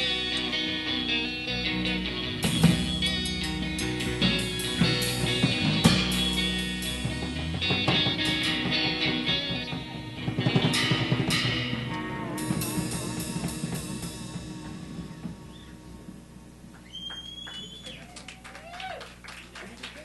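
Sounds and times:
live rock band playing: 0.0s - 16.3s
cymbal crashes: 10.7s - 16.4s.

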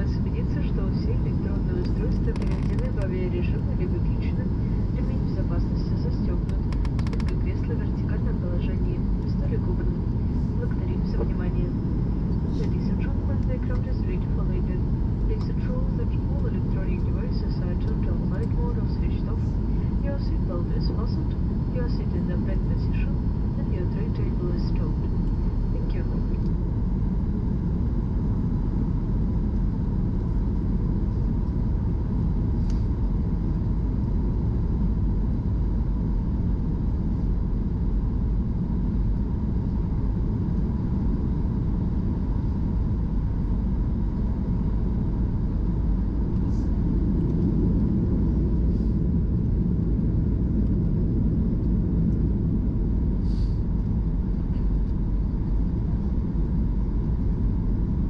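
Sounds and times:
airliner cabin rumble: 0.0s - 58.0s
faint steady hum: 0.0s - 58.0s.

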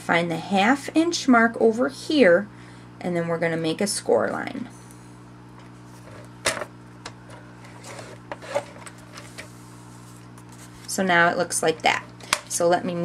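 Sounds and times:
blade sliding scrape: 7.7s - 10.8s.

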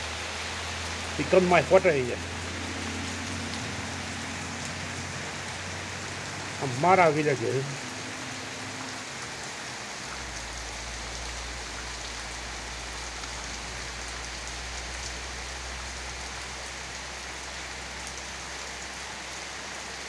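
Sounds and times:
heavy rain on leaves: 0.0s - 20.0s.

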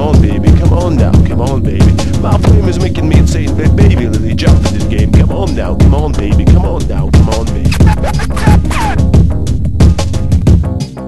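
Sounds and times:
hip-hop kick and bass beat: 0.0s - 11.0s
turntable scratches: 0.1s - 9.1s.

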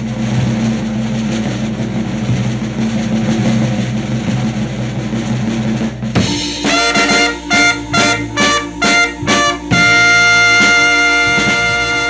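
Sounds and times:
drum roll: 0.0s - 12.0s
held low chord: 6.2s - 12.0s.

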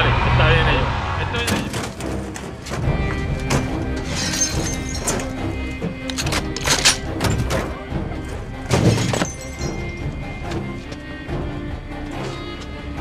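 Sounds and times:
dramatic action soundtrack music: 0.0s - 13.0s
crashing and smashing impact hits: 8.7s - 9.6s.

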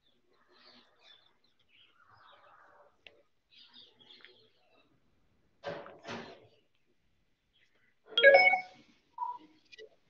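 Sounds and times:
bell-like chime: 8.2s - 8.7s.

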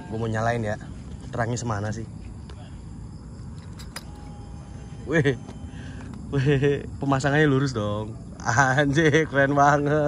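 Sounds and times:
faint thin whine: 0.0s - 9.4s.

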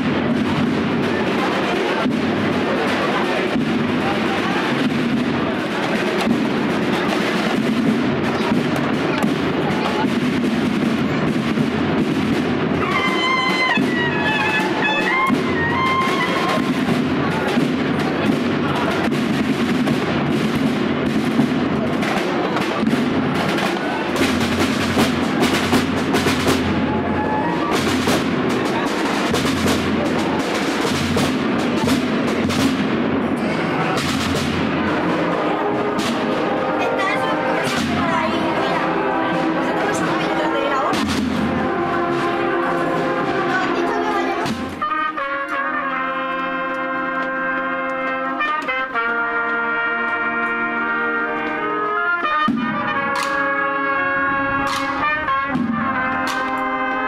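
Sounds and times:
sharp drum strokes: 0.0s - 45.6s, 54.7s - 56.6s
crowd chatter: 0.0s - 57.0s
processional band music: 0.0s - 57.0s.

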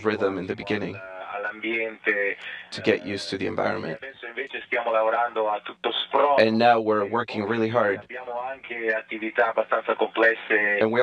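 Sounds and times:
person talking over radio: 0.0s - 11.0s.

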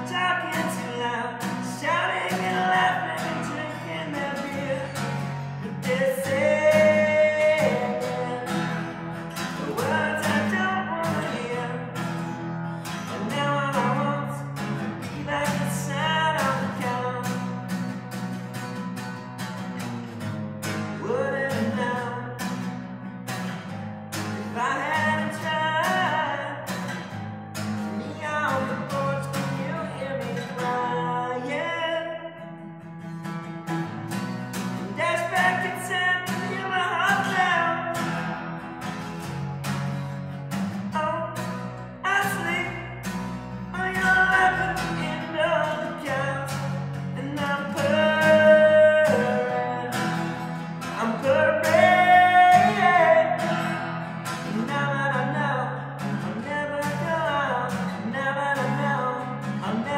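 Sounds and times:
man singing: 0.0s - 17.9s, 20.6s - 22.7s, 24.1s - 32.5s, 34.7s - 39.0s, 40.8s - 59.9s
strummed acoustic guitar: 0.0s - 59.9s.

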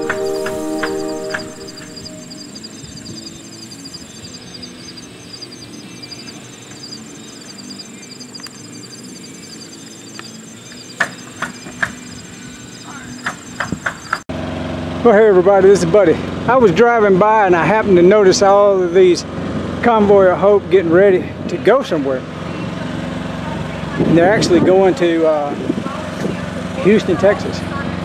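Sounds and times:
sharp clicks: 0.0s - 12.4s
insects chirping: 0.0s - 14.2s.

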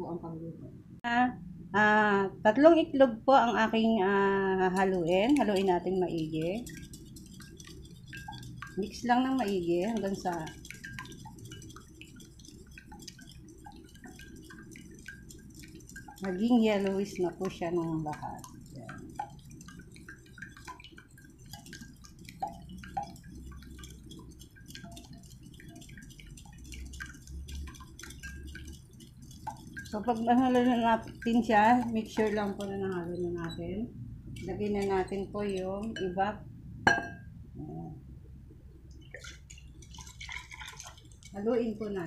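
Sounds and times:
eggs beaten in ceramic bowl: 3.4s - 37.3s, 38.9s - 42.0s
liquid pouring and splashing: 4.6s - 36.1s, 38.8s - 42.0s.

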